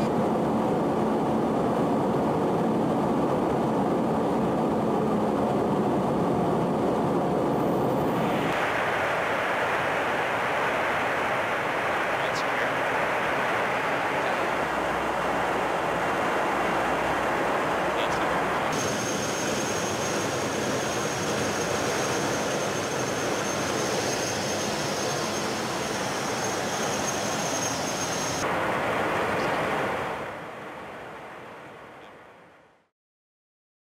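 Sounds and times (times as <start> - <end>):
engine and airflow rush: 0.0 - 32.6
thin high whine: 7.5 - 30.3.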